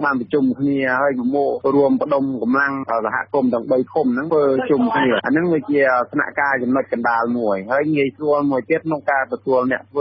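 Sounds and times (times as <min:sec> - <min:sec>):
man speaking on radio news: 0:00.0 - 0:10.0.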